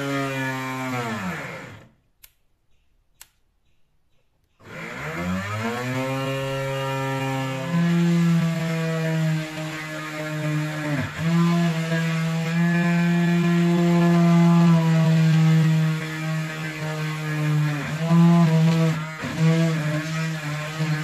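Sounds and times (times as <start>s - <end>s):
rotary tool motor whining: 0.0s - 2.0s, 4.6s - 21.0s
drill bit boring into plastic pipe: 4.6s - 21.0s.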